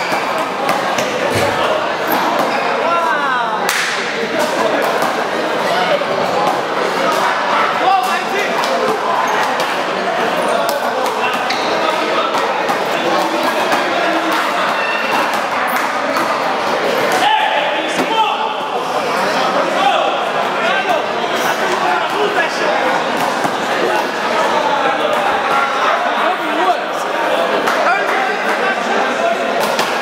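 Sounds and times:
players' voices: 0.0 - 30.0
sneaker squeaking on court floor: 10.3 - 16.4.

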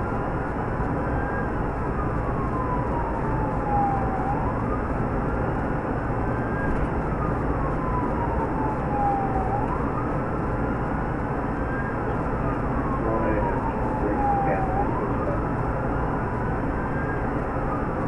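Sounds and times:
car driving at speed: 0.0 - 18.0
police siren wailing: 0.1 - 18.0.

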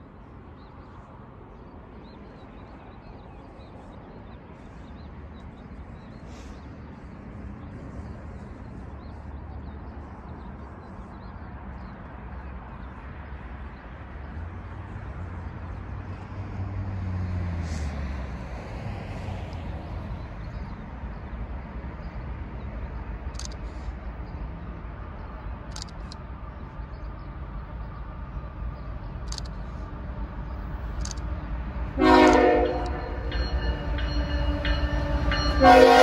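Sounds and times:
low engine rumble: 0.0 - 36.0
locomotive air horn: 32.0 - 33.3, 34.1 - 36.0.

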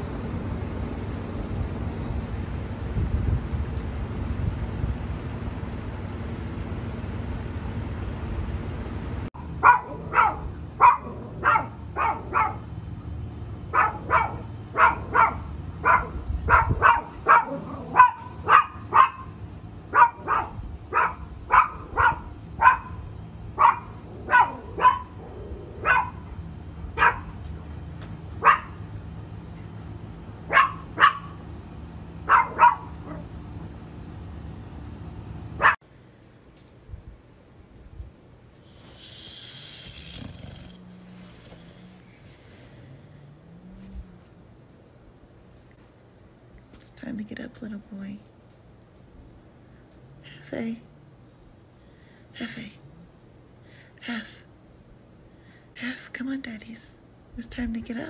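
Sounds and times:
wind rumble on microphone: 1.3 - 5.5, 15.8 - 17.5
dog barking: 9.4 - 12.7, 13.7 - 26.3, 27.0 - 27.4, 28.4 - 28.8, 30.5 - 31.4, 32.2 - 33.3.

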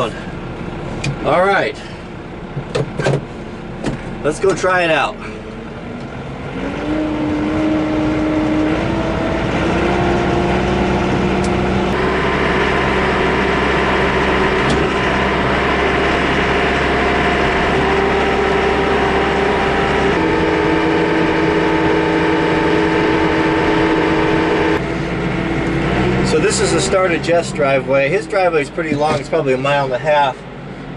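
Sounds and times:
tractor diesel engine: 0.0 - 30.9.

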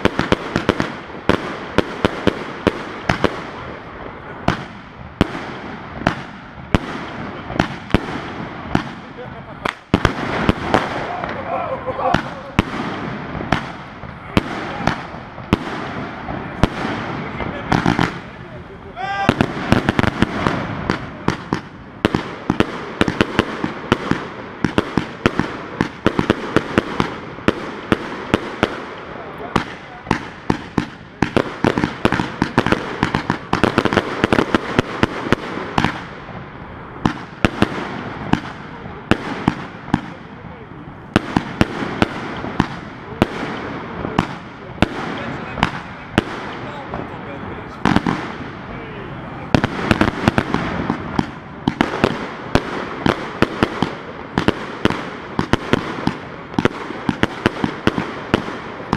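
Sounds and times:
firework crackle: 0.0 - 58.9
firework launches and bursts: 0.0 - 58.9.

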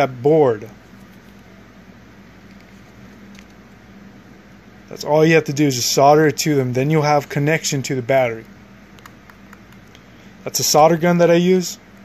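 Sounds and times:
background hiss: 0.0 - 12.0
faint low hum: 0.0 - 12.0.

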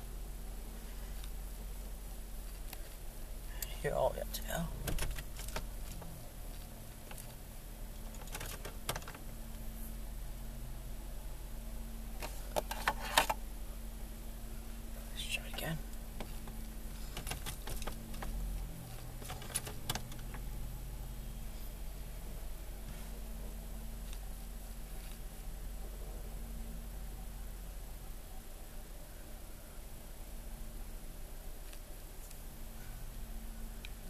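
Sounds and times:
car engine idling: 0.0 - 30.3.

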